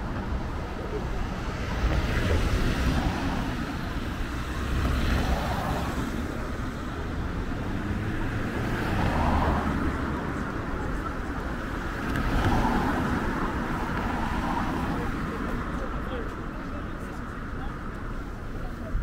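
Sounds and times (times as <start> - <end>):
cars driving past: 0.0 - 19.0.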